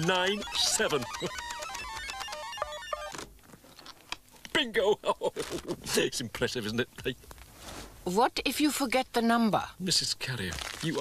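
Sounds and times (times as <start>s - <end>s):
electronic bleeping tones: 0.0s - 3.2s.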